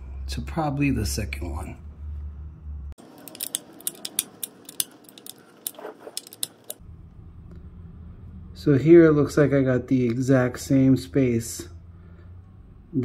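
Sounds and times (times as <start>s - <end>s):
low room hum: 0.0s - 13.0s
metallic clicks of hand tool: 3.2s - 6.8s.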